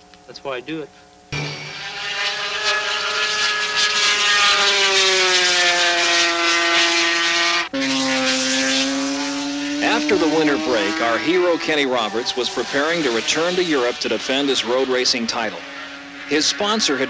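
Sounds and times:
lower steady engine note: 0.0s - 17.0s
racing motorcycle engine high revs: 1.3s - 17.0s.

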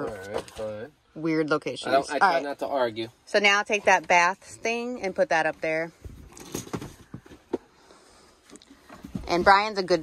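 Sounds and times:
household items knocking and rattling: 5.9s - 7.7s, 8.8s - 10.0s.

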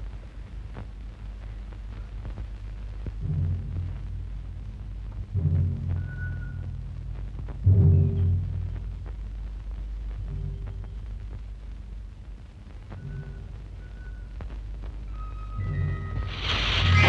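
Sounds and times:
heavy low drum strikes: 3.1s - 9.4s.

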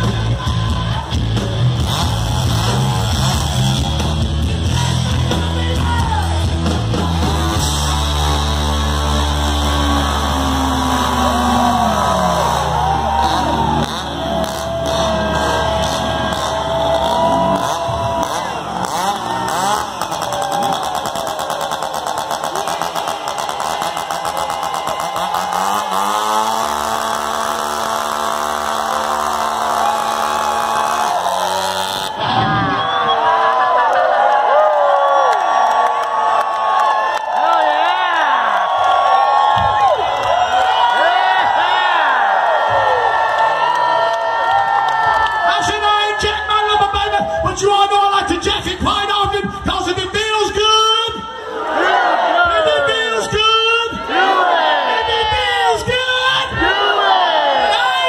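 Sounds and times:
live rock song: 0.0s - 11.9s
chainsaw revving: 1.3s - 5.4s, 6.5s - 32.4s.

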